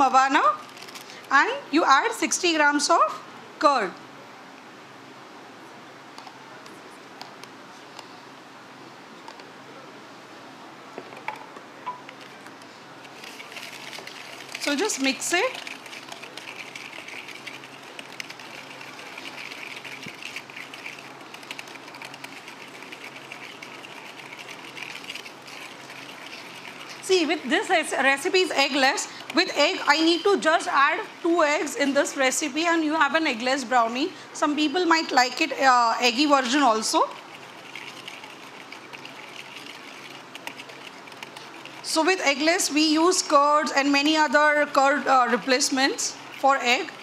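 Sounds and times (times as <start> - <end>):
whisk scraping a bowl: 13.0 - 33.5, 36.0 - 43.4.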